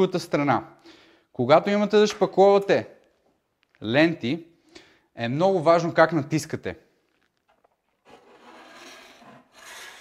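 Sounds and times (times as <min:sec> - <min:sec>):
steel blade scraping wet compound: 0:08.0 - 0:10.0.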